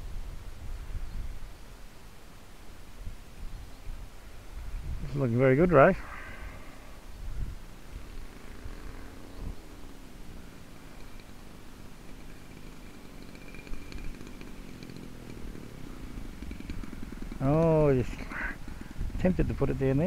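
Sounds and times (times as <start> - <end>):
wind rumble on microphone: 0.0 - 2.0, 2.7 - 11.4, 12.2 - 20.0
faint high whine: 0.0 - 20.0
model plane engine droning: 5.5 - 20.0.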